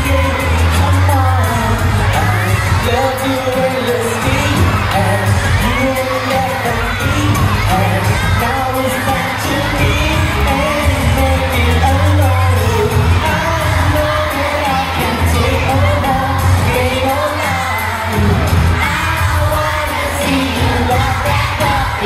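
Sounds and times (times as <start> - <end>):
crowd of children: 0.0 - 22.0
pop song with singer: 0.0 - 22.0.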